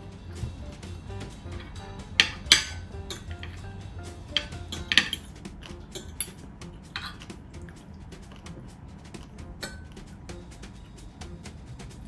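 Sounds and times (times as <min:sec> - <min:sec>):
quiet background music: 0:00.0 - 0:12.0
knife and fork scraping a plate: 0:04.3 - 0:08.6.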